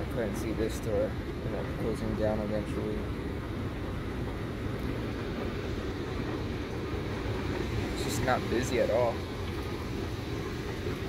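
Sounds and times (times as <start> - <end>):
escalator low rumble: 0.0 - 11.0.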